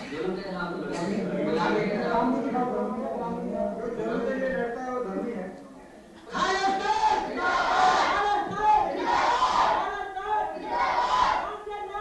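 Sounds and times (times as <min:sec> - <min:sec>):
crowd shouting slogans in unison: 0:06.3 - 0:11.5.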